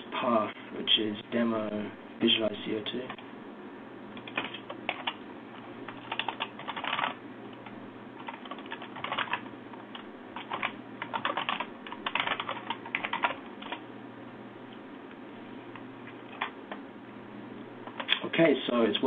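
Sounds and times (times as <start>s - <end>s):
computer keyboard typing: 4.2s - 5.2s, 5.9s - 13.8s, 16.3s - 16.6s, 17.8s - 18.2s.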